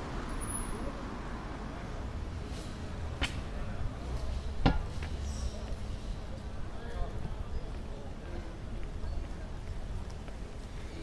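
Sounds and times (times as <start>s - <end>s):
low street hum: 0.0s - 11.0s.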